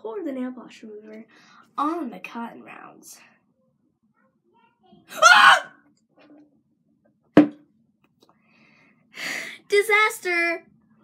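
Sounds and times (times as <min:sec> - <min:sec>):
plastic bottle set down: 0:07.4 - 0:07.6.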